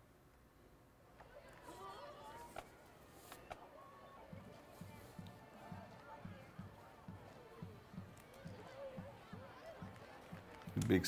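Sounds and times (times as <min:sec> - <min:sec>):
faint indistinct voices: 0:01.0 - 0:11.0
faint steady drumbeat: 0:04.1 - 0:10.8.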